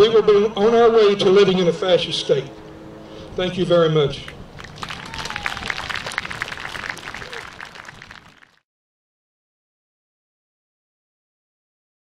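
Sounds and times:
crowd applauding: 0:04.6 - 0:08.6.

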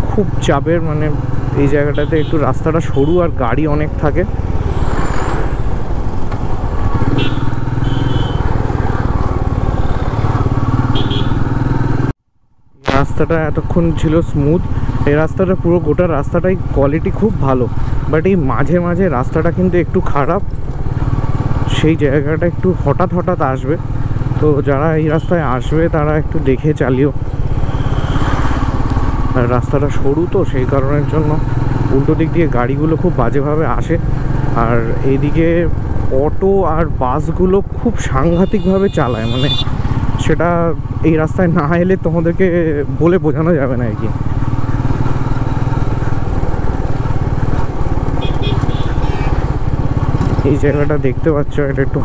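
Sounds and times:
motorcycle engine running: 0:00.0 - 0:12.1, 0:13.3 - 0:52.0
road noise: 0:00.0 - 0:52.0.

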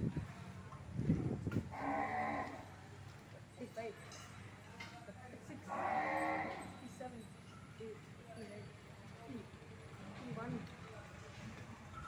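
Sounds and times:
cow mooing: 0:01.7 - 0:02.7, 0:05.7 - 0:06.8.

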